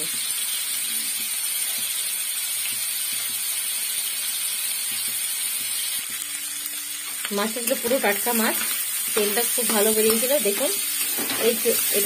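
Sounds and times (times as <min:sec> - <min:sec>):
oil sizzling: 0:00.0 - 0:12.0.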